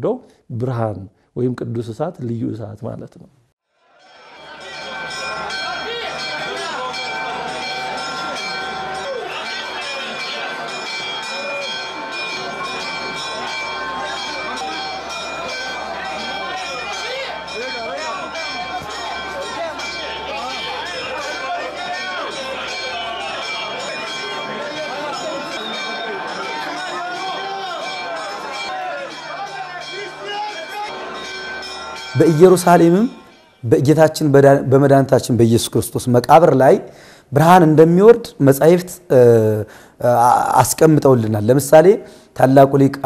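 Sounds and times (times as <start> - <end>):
crowd voices: 3.8 - 33.7
church bells ringing: 4.0 - 35.7.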